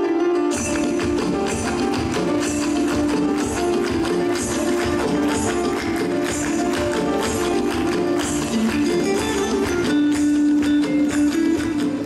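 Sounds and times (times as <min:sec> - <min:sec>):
song with melody over a beat: 0:00.6 - 0:12.0.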